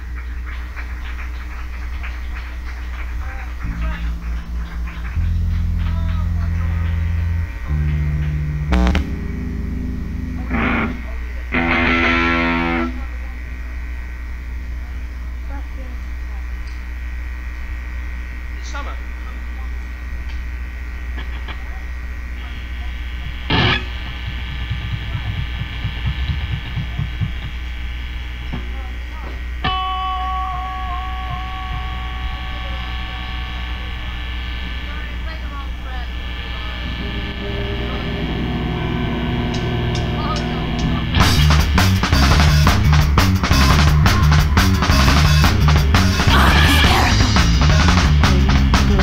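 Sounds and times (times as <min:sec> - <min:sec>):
low bass notes: 0:00.0 - 0:18.6, 0:22.0 - 0:49.0
amplifier hum: 0:00.0 - 0:49.0
droning guitar tones: 0:00.0 - 0:49.0.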